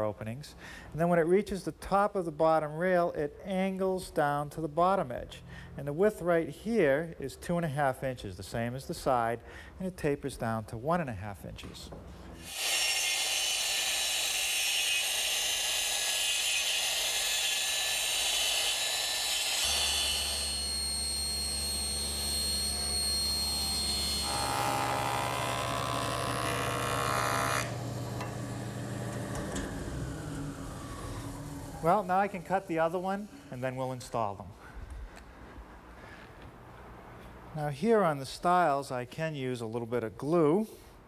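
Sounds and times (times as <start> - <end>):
saw blade winding down: 12.4 - 33.7
table saw cutting wood: 12.4 - 33.8.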